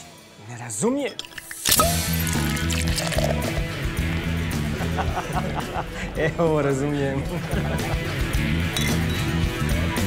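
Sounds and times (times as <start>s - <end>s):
background music: 0.0s - 10.0s
glass clinking: 1.1s - 3.6s, 8.7s - 9.3s.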